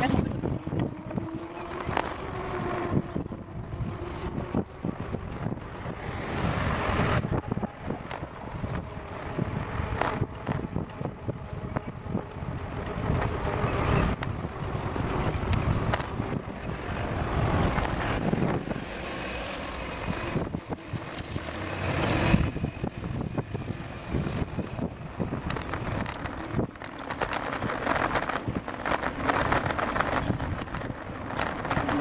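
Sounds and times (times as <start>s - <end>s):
motor vehicles passing: 0.0s - 32.0s
road noise: 0.0s - 32.0s
wind buffeting microphone: 0.0s - 32.0s.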